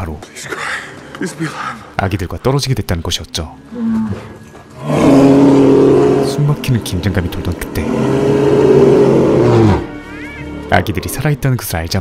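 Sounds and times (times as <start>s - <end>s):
bear roaring: 3.7s - 10.0s.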